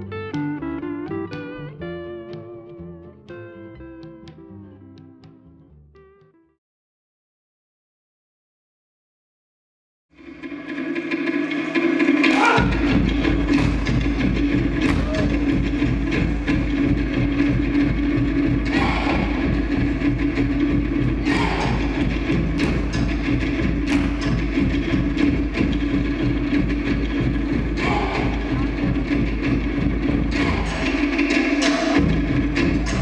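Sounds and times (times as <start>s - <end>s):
fast drumming: 10.3s - 33.0s
sharp drum strikes: 10.9s - 33.0s.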